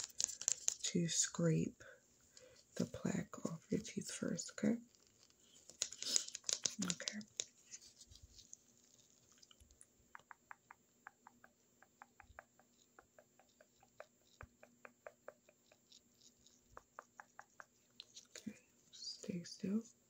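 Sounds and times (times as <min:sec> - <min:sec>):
person whispering: 0:06.0 - 0:07.4, 0:18.3 - 0:19.9.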